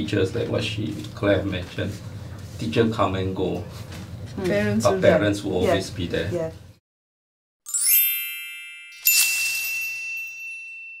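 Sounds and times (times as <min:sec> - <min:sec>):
bright ding ringing: 0:07.7 - 0:11.0
upward run of bright chimes: 0:07.7 - 0:11.0.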